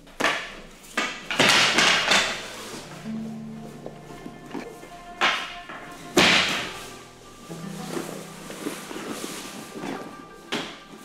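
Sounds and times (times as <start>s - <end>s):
wooden pole crashing onto floor: 5.3s - 6.8s.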